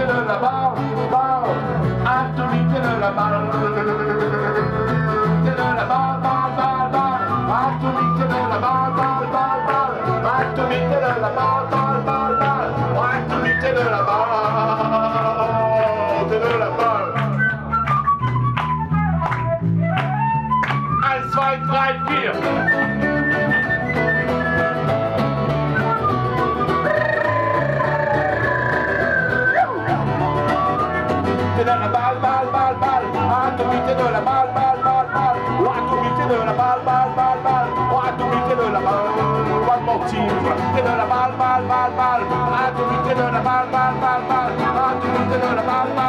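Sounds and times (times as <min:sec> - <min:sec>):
person singing: 0:00.0 - 0:17.4, 0:26.8 - 0:46.0
acoustic rock band playing: 0:00.0 - 0:46.0
bass line: 0:00.0 - 0:46.0
strummed guitar: 0:00.0 - 0:46.0.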